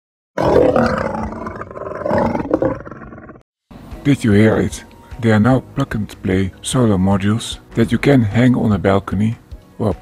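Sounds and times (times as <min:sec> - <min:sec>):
animal growling roar: 0:00.4 - 0:03.4.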